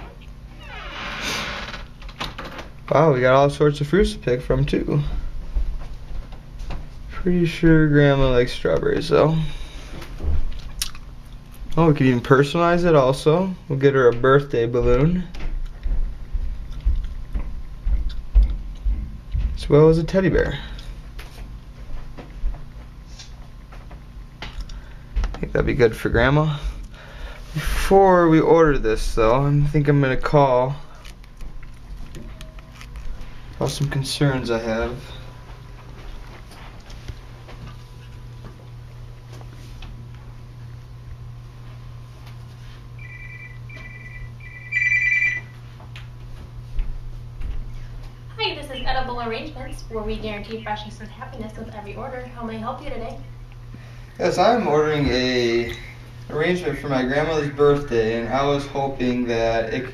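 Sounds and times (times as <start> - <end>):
mobile phone ringtone: 43.0 - 45.6.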